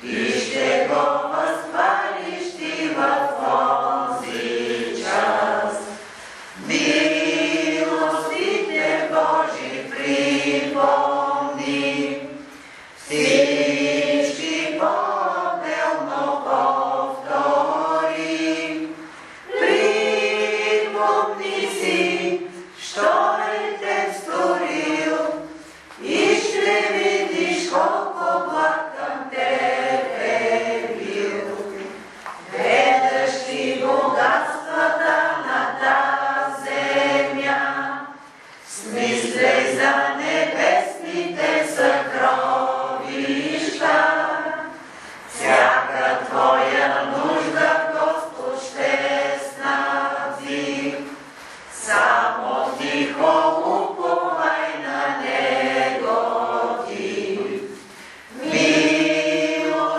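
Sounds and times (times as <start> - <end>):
group singing a hymn: 0.0 - 59.9.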